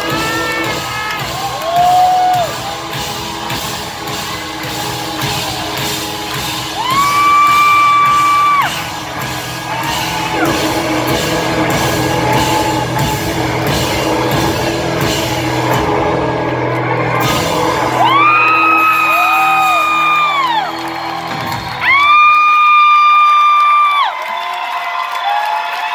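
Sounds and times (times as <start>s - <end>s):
live rock band playing: 0.0s - 22.3s.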